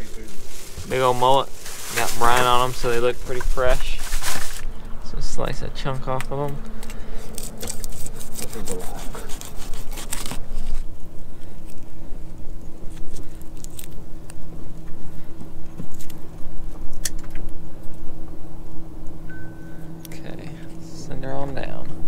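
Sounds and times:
thin high beep: 0:19.3 - 0:20.0.

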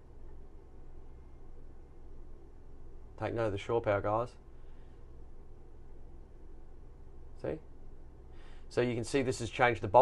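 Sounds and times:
air conditioner humming: 0:00.0 - 0:10.0.

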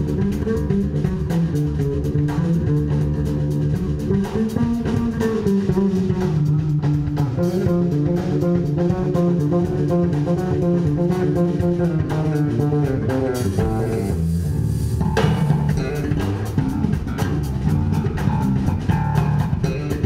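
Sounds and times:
bass guitar melodic line: 0:00.0 - 0:20.0
drum kit: 0:00.0 - 0:20.0
electric guitar: 0:00.0 - 0:20.0.

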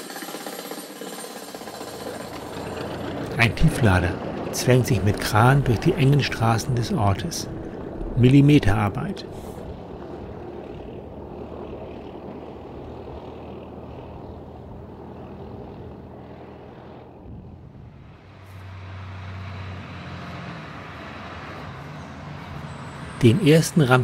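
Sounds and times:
deeper engine hum: 0:01.5 - 0:24.0
heavy vehicle engine rumbling: 0:01.6 - 0:24.0.

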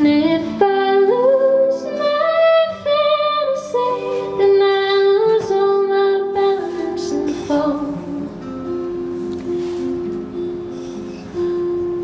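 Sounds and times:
acoustic guitar: 0:00.0 - 0:12.0
keyboard accompaniment: 0:00.0 - 0:12.0.

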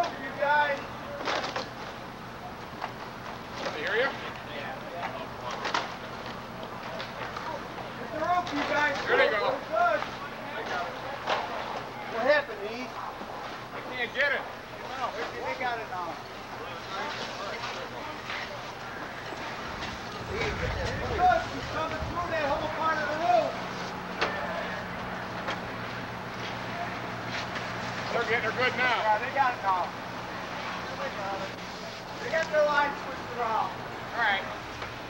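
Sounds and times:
fire engine drone: 0:00.0 - 0:35.0
voices calling out: 0:00.0 - 0:35.0.

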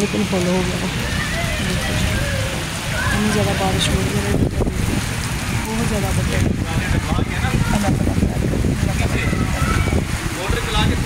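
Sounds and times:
faint voices: 0:00.0 - 0:11.0
heavy rain on street: 0:00.0 - 0:11.0.

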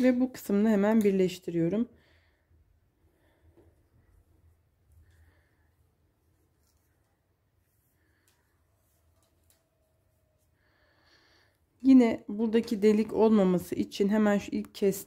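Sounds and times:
faint handling of knitting needles: 0:03.6 - 0:10.6.

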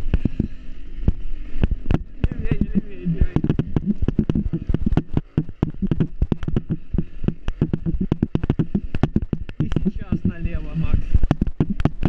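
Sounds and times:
motorcycle engine rumble: 0:00.0 - 0:12.0
rattling knocks on bumpy path: 0:01.8 - 0:10.4, 0:11.2 - 0:12.0.

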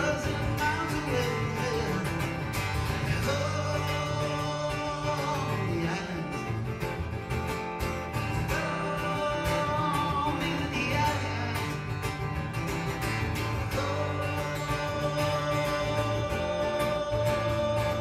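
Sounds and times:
person singing: 0:00.0 - 0:06.7, 0:08.4 - 0:11.9, 0:13.5 - 0:18.0
acoustic guitar: 0:00.0 - 0:18.0.

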